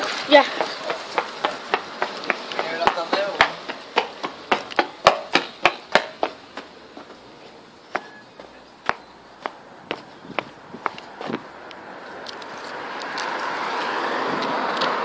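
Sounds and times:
quick footsteps: 0.0s - 15.0s.

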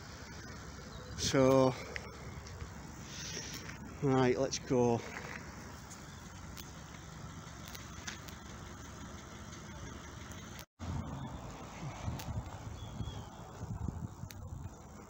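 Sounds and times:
outdoor rumble: 0.0s - 15.0s
wind buffeting microphone: 10.8s - 15.0s.

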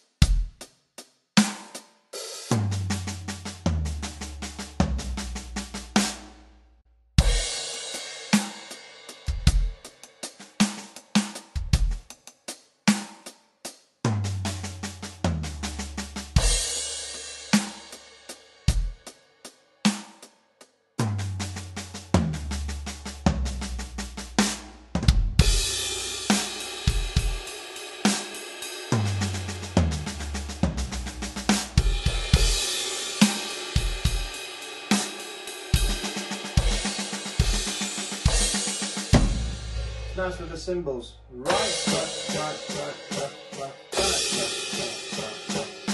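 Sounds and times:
electronic drum kit groove: 0.0s - 0.7s, 1.4s - 6.4s, 7.2s - 13.4s, 14.1s - 19.2s, 21.0s - 40.8s, 41.5s - 45.9s
crash cymbals: 7.2s - 11.4s, 16.4s - 18.8s, 25.4s - 40.8s, 41.4s - 45.9s.

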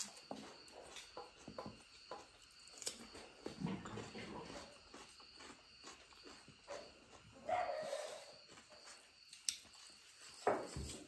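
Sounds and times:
person chewing food: 0.8s - 7.5s.

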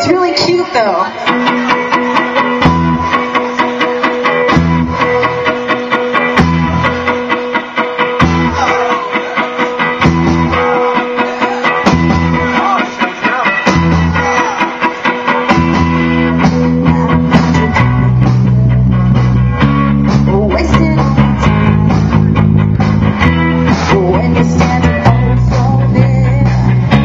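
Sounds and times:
punk rock band playing: 0.0s - 27.0s.

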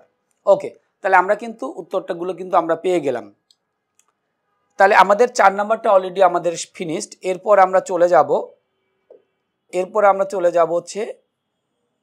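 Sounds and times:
man speaking: 0.5s - 3.4s, 4.8s - 8.6s, 9.8s - 11.2s
faint clicks: 3.4s - 4.2s.

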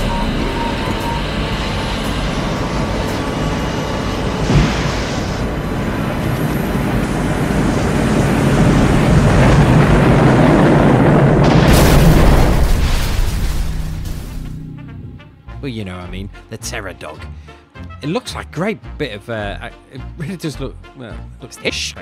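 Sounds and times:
low vehicle rumble: 0.0s - 13.1s
brief thud: 4.5s - 5.1s.

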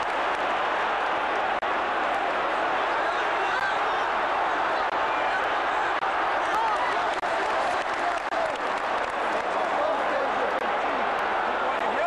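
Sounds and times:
stadium crowd shouting and cheering: 0.0s - 12.0s.

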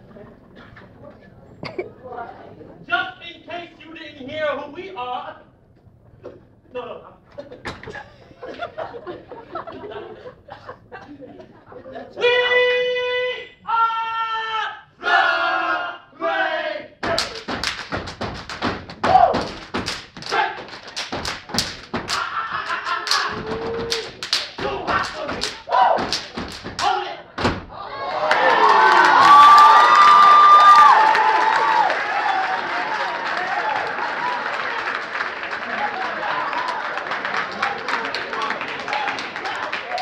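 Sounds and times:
stomping and clapping rhythm: 17.0s - 40.0s
crowd cheering and screaming: 27.8s - 34.7s.

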